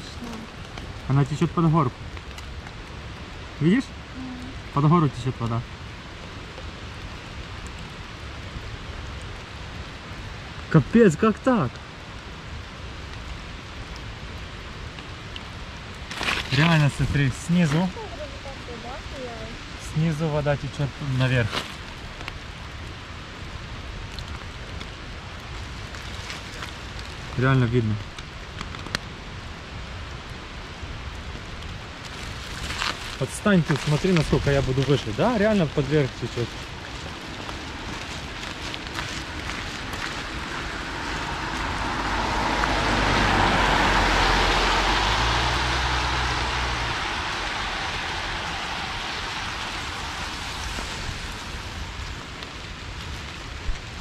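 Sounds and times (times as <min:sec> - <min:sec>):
rainwater running in gutter: 0:00.0 - 0:54.0.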